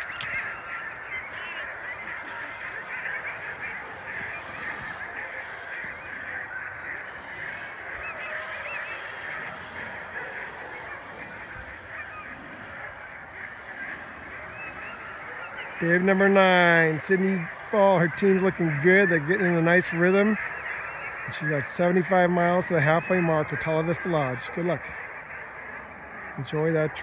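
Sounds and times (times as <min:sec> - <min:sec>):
sled dogs yelping and barking: 0:00.0 - 0:27.0.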